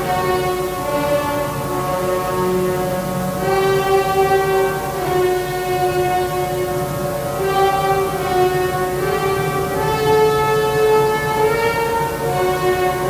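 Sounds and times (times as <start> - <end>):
orchestra sustained chords: 0.0 - 13.0.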